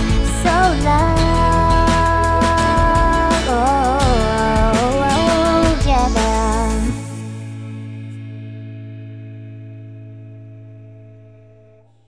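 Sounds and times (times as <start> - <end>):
acoustic guitar chord ringing: 0.0 - 12.0.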